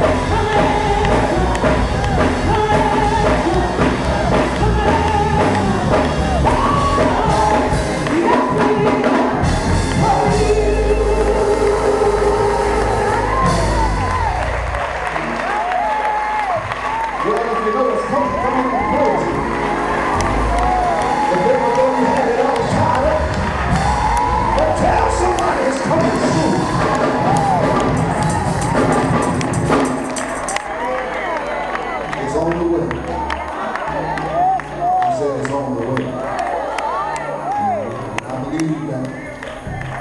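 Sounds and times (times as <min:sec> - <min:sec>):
gospel choir singing: 0:00.0 - 0:14.6
steady bass: 0:00.0 - 0:35.4
band accompaniment: 0:00.0 - 0:40.0
congregation cheering and calling out: 0:00.0 - 0:40.0.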